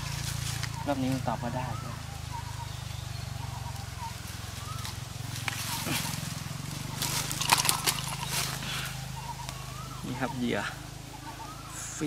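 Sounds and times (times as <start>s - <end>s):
dry leaves rustling and crackling: 0.0s - 12.0s
faint bird chirps: 0.0s - 12.0s
low hum: 0.0s - 12.0s.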